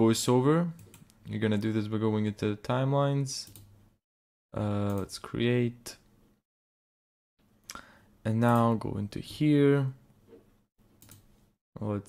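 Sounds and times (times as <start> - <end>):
computer mouse clicks: 3.4 - 3.7, 11.0 - 11.3.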